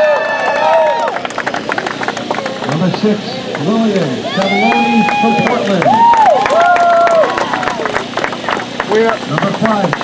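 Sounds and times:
crowd handclapping: 0:00.0 - 0:03.7, 0:04.4 - 0:10.0.

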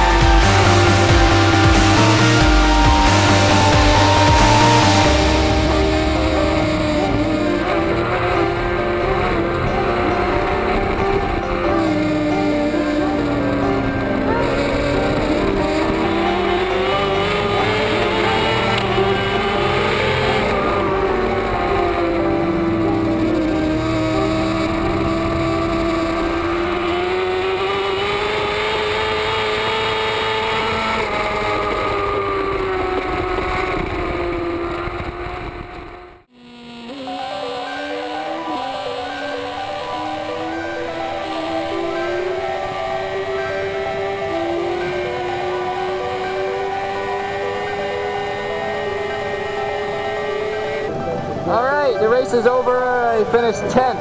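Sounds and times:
motorcycle engine at race speed: 0:00.0 - 0:54.0.

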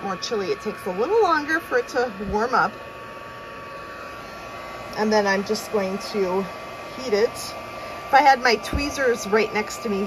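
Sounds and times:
heat tool fan whoosh and whine: 0:00.0 - 0:10.0.

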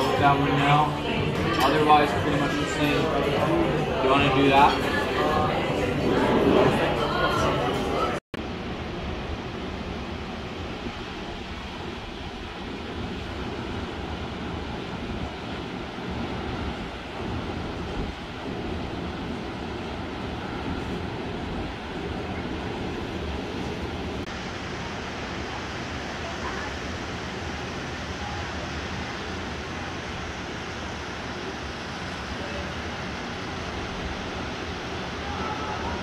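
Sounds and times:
wind rushing over microphone: 0:00.0 - 0:36.0.

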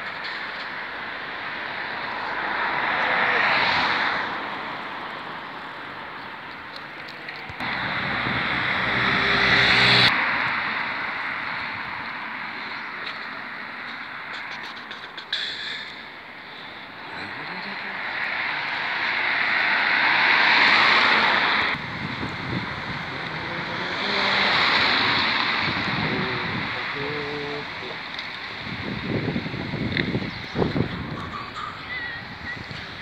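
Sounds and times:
cars passing by: 0:00.0 - 0:33.0.

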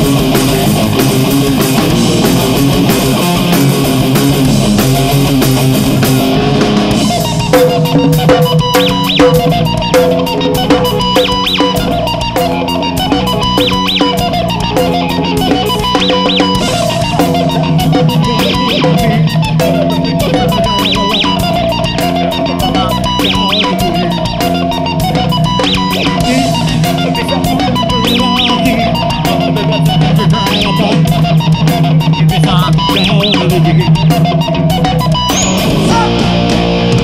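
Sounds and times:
rock band playing: 0:00.0 - 0:37.0.

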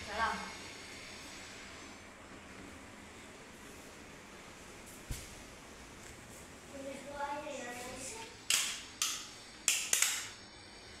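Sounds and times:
sharp hissy clicks: 0:08.0 - 0:10.5.

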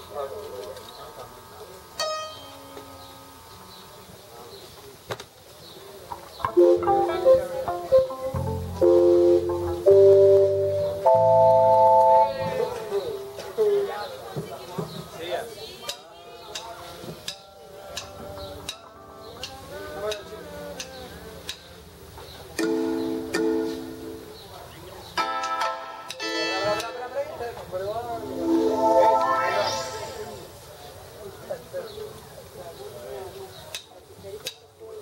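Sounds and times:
electric band chords: 0:06.5 - 0:12.8
scattered instrument notes: 0:06.6 - 0:12.8, 0:28.1 - 0:30.5.

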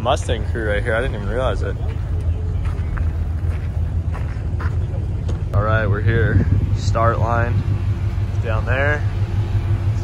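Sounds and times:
car engines idling: 0:00.0 - 0:10.0.

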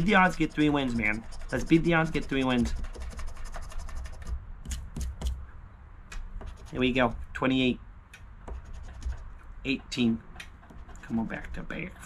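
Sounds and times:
metal scratcher scraping ticket: 0:00.0 - 0:04.2.

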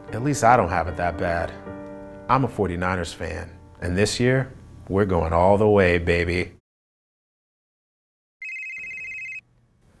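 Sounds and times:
mobile phone ringing: 0:08.4 - 0:09.4.

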